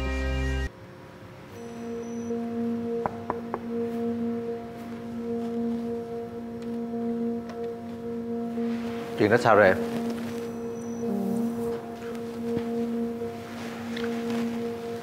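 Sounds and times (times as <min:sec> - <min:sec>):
sustained drone of held tones: 0:01.4 - 0:15.0.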